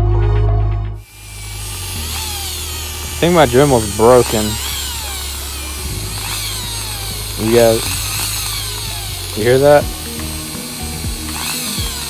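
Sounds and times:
low hum: 0.0 - 12.0
rotary tool motor whine: 1.0 - 12.0.

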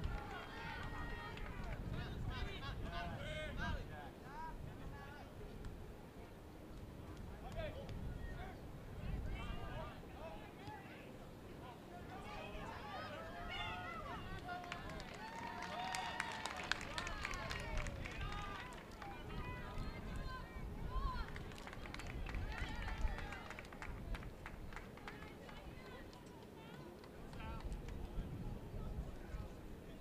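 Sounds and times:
people shouting and calling: 12.1 - 14.6.

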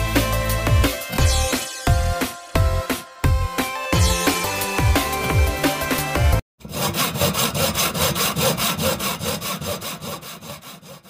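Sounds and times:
fast rasping strokes: 6.6 - 11.0.

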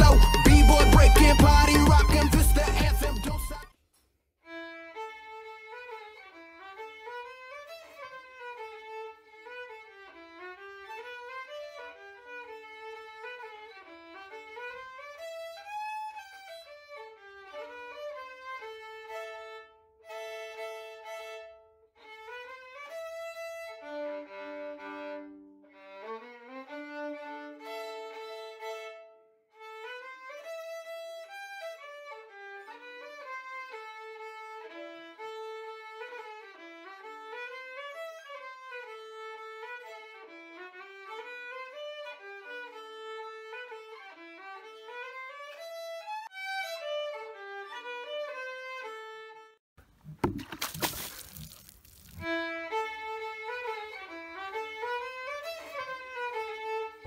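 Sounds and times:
violin melody: 0.0 - 3.7, 4.4 - 49.6, 52.0 - 57.0.

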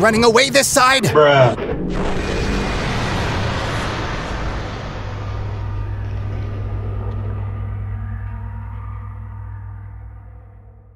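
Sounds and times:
helicopter rotor flying away: 1.6 - 7.8
steady low hum: 1.6 - 10.9.

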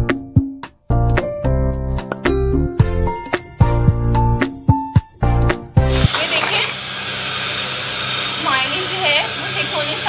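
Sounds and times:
electric hand mixer running: 5.8 - 10.0.

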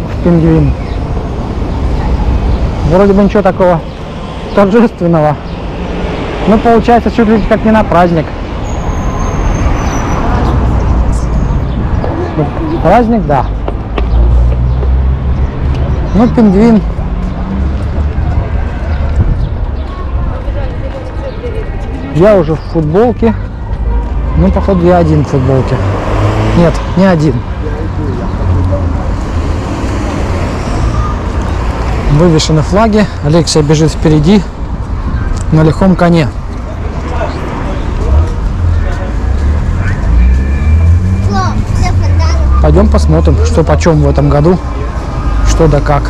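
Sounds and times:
low street rumble: 0.0 - 46.0
faint voices: 10.1 - 46.0.

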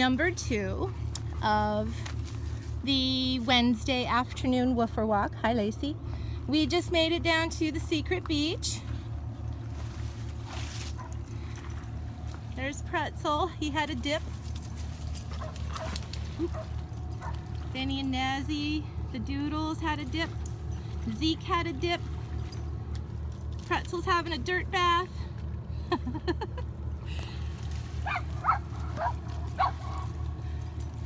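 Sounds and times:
low steady rumble: 0.0 - 31.0
dogs yipping and whining: 28.0 - 30.9.

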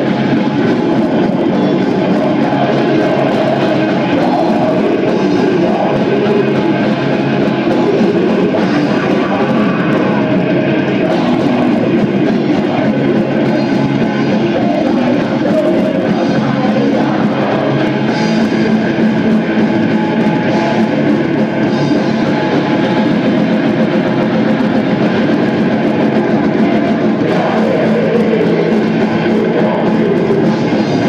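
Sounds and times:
black metal band playing live: 0.0 - 31.0
distorted electric guitars: 0.0 - 31.0
drums: 0.0 - 31.0.

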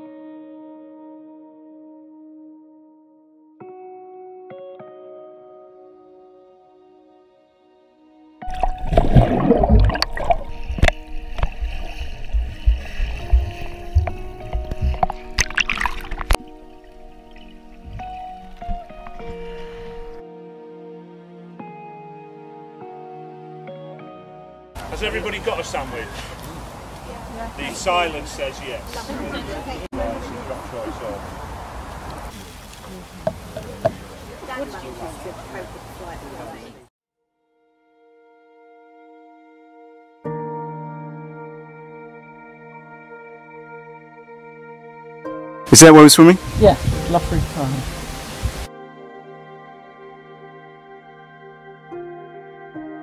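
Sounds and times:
background music: 0.0 - 26.1, 37.7 - 53.0
underwater splashing and gurgling: 8.4 - 20.2
deep rumbling thumps: 9.0 - 15.5.

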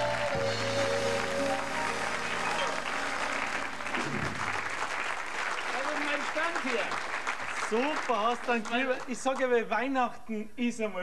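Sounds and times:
music of held chords: 0.0 - 3.8
audience applauding: 0.0 - 9.6.

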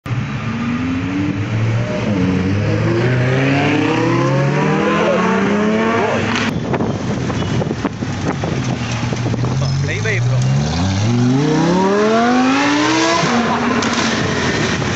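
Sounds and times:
car engine accelerating hard: 0.4 - 6.5, 7.9 - 14.9.

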